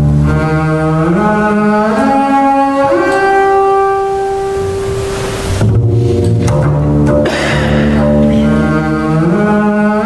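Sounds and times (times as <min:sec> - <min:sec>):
bowed double bass note: 0:00.0 - 0:10.0.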